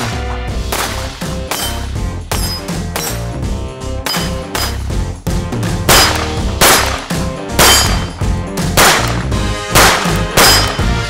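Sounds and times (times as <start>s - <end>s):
background music: 0.0s - 11.0s
pistol shots: 5.9s - 8.2s, 8.8s - 11.0s.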